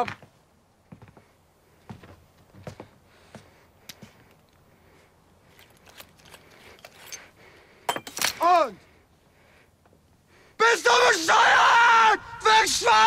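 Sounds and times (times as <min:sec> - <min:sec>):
soft footsteps: 0:00.0 - 0:04.6.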